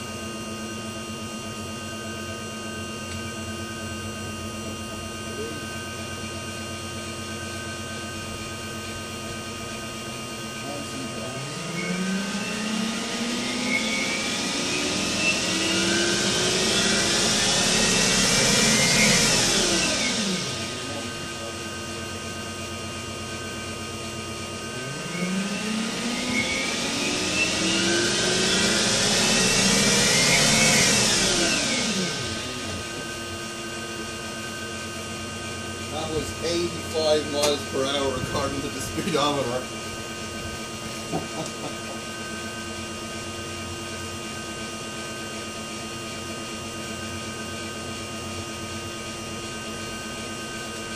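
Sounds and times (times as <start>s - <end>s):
electric drivetrain whine: 0.0s - 50.9s.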